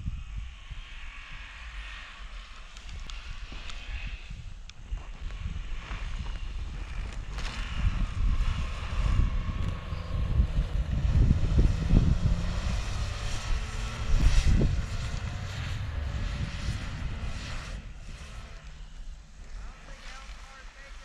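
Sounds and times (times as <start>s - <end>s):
wind rumble on microphone: 0.0s - 21.0s
car engine revving: 7.3s - 21.0s.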